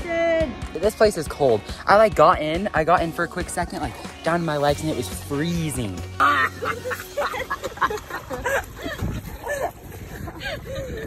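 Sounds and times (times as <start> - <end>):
teenagers laughing: 6.2 - 11.0.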